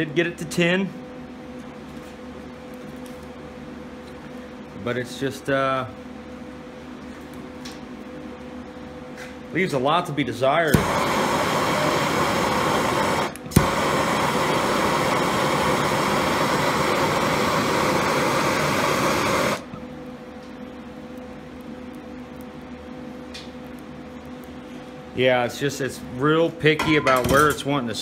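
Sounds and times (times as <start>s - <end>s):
low steady hum: 0.0s - 28.0s
gas torch flame hissing: 10.6s - 19.8s.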